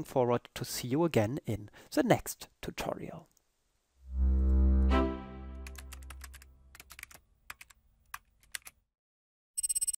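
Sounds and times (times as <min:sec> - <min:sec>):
synth note: 0:04.0 - 0:06.2
keyboard typing clicks: 0:05.6 - 0:08.8.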